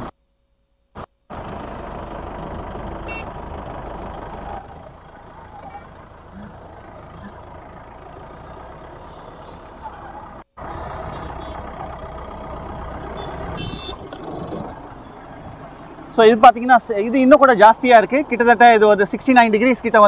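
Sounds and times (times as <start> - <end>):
jeep engine rumble: 1.0 - 20.0.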